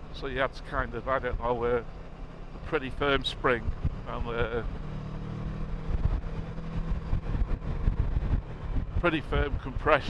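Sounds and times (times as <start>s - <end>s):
motorcycle engine cruising: 0.0s - 10.0s
wind rumbling on microphone: 3.2s - 10.0s.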